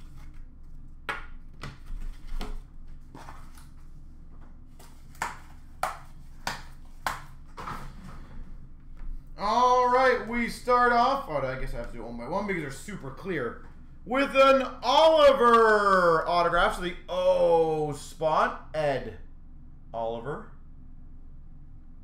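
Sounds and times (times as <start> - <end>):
faint steady hum: 0.0 - 22.0
man speaking: 9.4 - 19.2, 20.0 - 20.6.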